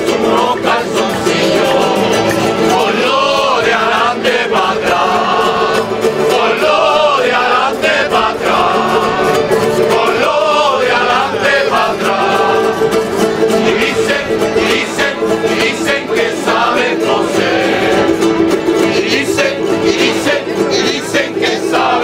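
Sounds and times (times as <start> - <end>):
men singing in chorus: 0.0 - 22.0
strummed small guitars: 0.0 - 22.0.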